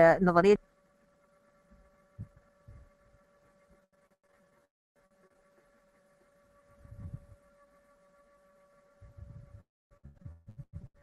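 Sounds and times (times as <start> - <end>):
faint hum: 0.0 - 11.0
soft low thumps: 2.2 - 2.9, 9.0 - 11.0.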